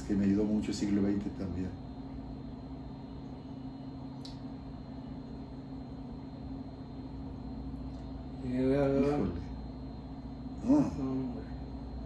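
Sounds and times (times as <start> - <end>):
low hum: 0.0 - 12.0
faint click: 4.2 - 4.4.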